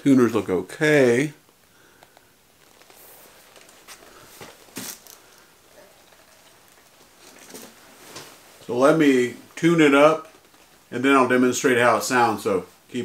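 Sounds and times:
leather jacket rustling: 2.5 - 11.0.

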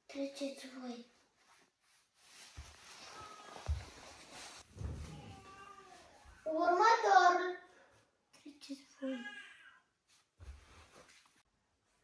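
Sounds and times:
faint room noise: 0.0 - 12.0.

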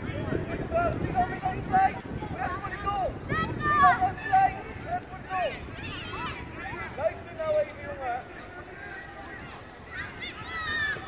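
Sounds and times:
wind rumble on microphone: 0.0 - 11.0
children shouting: 2.3 - 4.6, 5.2 - 7.2, 8.5 - 11.0.

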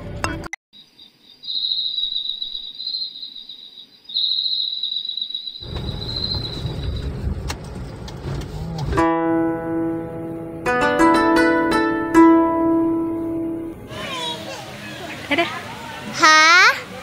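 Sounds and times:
crickets chirping: 0.8 - 7.2
car driving on road: 5.6 - 10.7.

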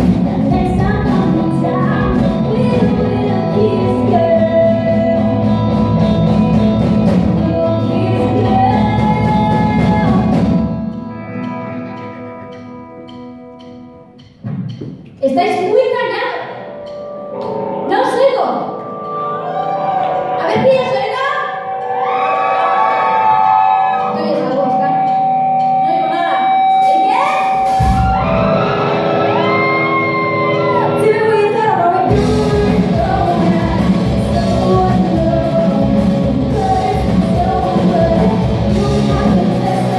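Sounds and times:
person singing: 0.0 - 6.0, 7.0 - 12.0, 30.6 - 39.9
electric guitars sustained notes: 0.0 - 14.3, 16.4 - 39.9
bass guitar: 0.0 - 15.2, 16.4 - 39.9
drum kit cymbals beat: 24.5 - 28.5.

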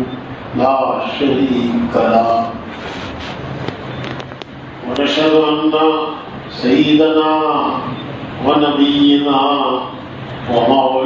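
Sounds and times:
sharp clicks and crackles: 3.6 - 4.6.

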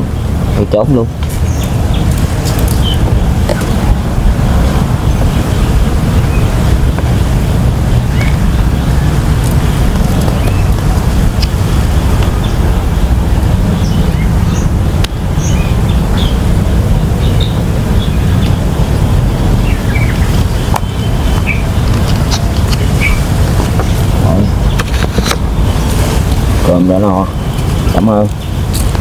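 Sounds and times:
low outdoor rumble: 0.0 - 29.0
bird chirps: 1.4 - 3.7, 8.0 - 10.8, 12.2 - 18.8, 19.6 - 26.0, 26.6 - 28.9.

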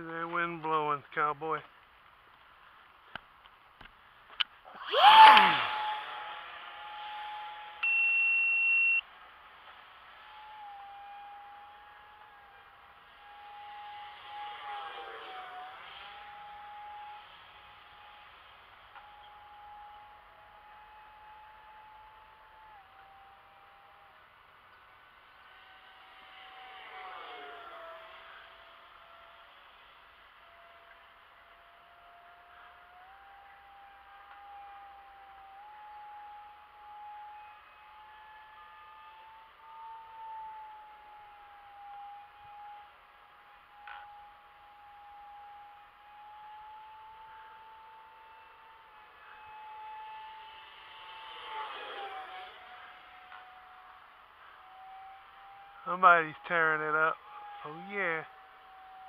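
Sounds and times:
model jet fan whine: 0.0 - 59.0.

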